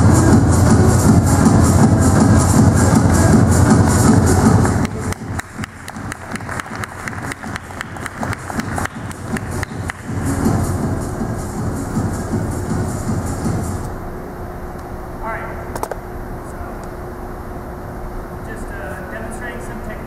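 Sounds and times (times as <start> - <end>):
background music: 0.0 - 13.9
audience clapping: 4.1 - 10.3.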